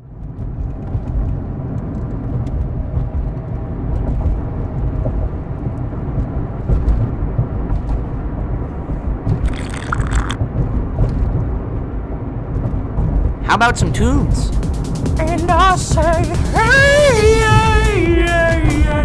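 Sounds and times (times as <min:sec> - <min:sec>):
vehicle engine and road rumble: 0:00.0 - 0:19.0.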